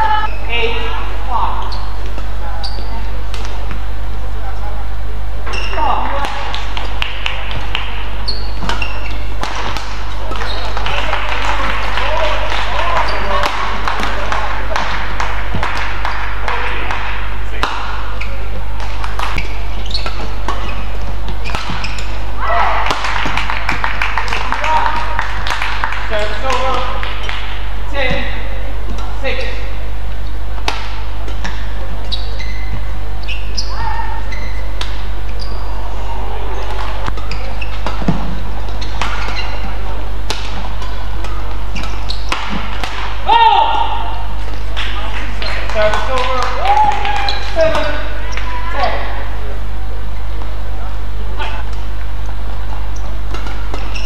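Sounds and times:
voices in a hall: 0.0 - 54.0
shoes squeaking on court: 1.5 - 3.7, 5.4 - 11.0, 12.8 - 14.2, 18.0 - 22.3, 26.5 - 35.8, 36.5 - 42.8, 51.4 - 54.0
rackets striking shuttlecock: 6.2 - 10.6, 16.9 - 22.2, 30.6 - 31.8, 34.7 - 35.1, 36.7 - 43.2, 53.0 - 54.0.

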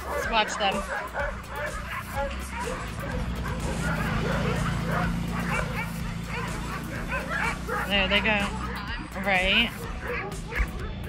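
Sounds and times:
huskies barking and yipping: 0.0 - 11.0.

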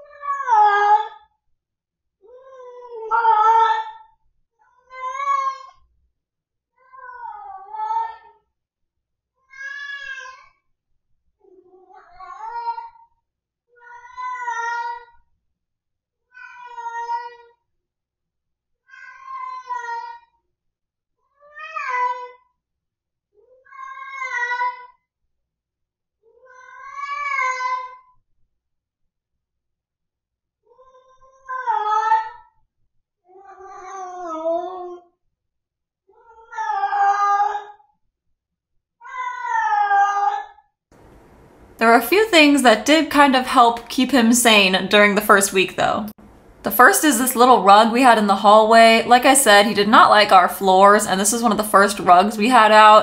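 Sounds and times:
cat yowling: 2.4 - 4.0, 39.0 - 40.5.

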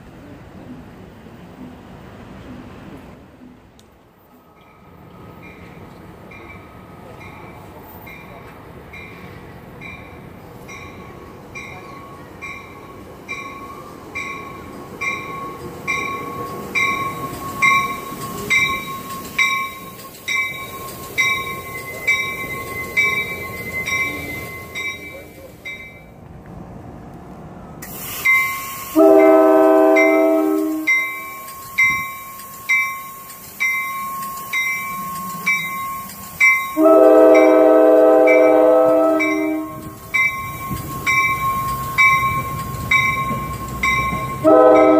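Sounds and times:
train rumbling: 0.0 - 44.9
warning bell ringing: 9.8 - 26.1, 28.3 - 44.9
locomotive horn blasts: 28.8 - 31.2, 36.7 - 39.9, 44.3 - 44.9.

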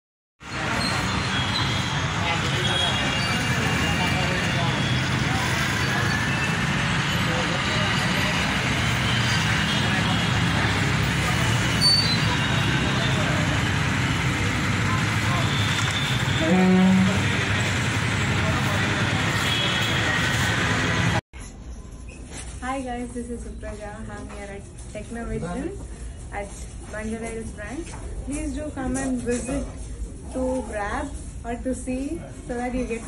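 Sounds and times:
street traffic noise: 0.4 - 33.0
short pitched honk: 15.6 - 17.5.

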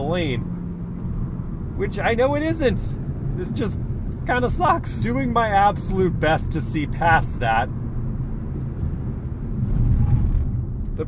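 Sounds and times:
car cabin drone: 0.0 - 11.0.

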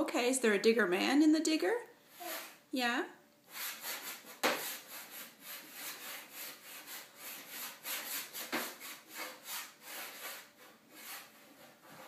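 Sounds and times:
chalk scribbling on chalkboard: 3.5 - 12.0.

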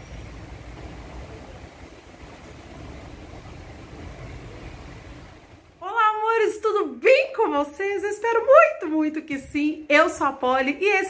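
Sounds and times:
faint hiss: 0.0 - 5.8
low outdoor rumble: 0.0 - 11.0.

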